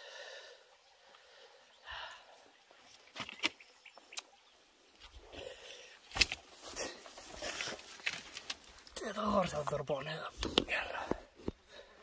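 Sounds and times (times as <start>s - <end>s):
footsteps scrambling over rock: 6.0s - 11.7s.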